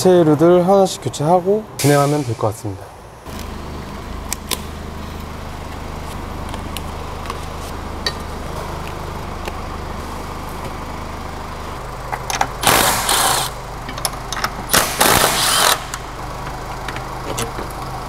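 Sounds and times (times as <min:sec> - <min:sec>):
low workshop hum: 0:00.0 - 0:18.0
impact wrench bursts: 0:12.3 - 0:16.2.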